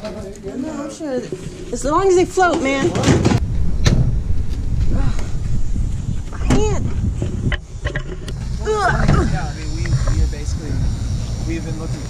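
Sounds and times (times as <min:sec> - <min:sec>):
steady low rumble: 0:03.3 - 0:12.0.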